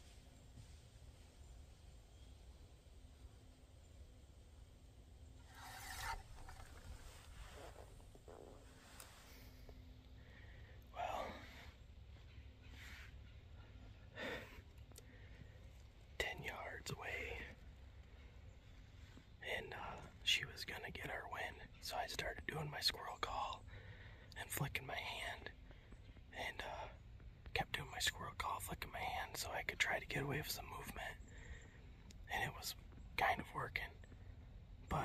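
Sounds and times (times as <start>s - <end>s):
man whispering: 10.2s - 11.8s, 16.1s - 18.3s, 19.0s - 34.1s.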